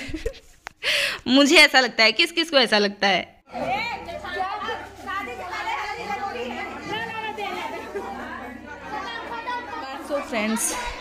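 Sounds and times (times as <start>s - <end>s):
overlapping crowd chatter: 3.5s - 11.0s.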